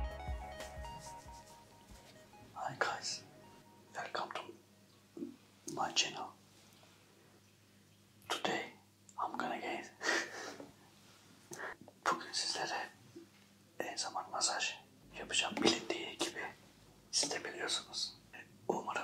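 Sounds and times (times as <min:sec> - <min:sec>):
man talking softly: 0:04.0 - 0:04.6, 0:13.8 - 0:19.0.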